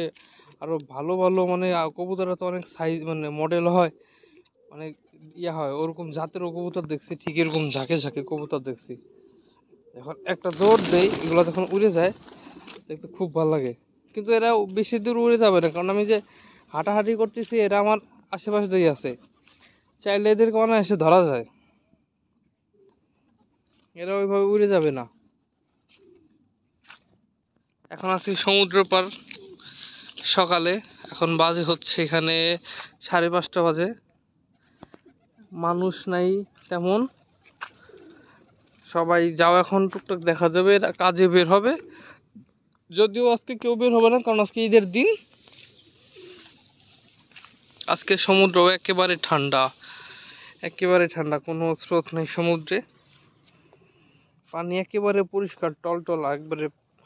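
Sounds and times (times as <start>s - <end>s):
man's voice: 5.3s - 9.0s, 10.0s - 12.2s, 12.9s - 19.2s
pigeon cooing: 7.4s - 13.4s, 28.9s - 30.2s, 37.6s - 38.6s, 41.8s - 42.2s, 45.6s - 46.8s
pigeons wings flapping: 10.3s - 13.0s, 36.6s - 39.2s.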